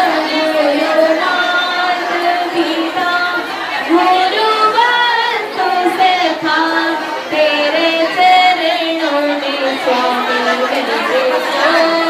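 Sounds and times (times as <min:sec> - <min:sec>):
people talking: 0:00.0 - 0:12.0
voices singing held notes: 0:00.0 - 0:12.0.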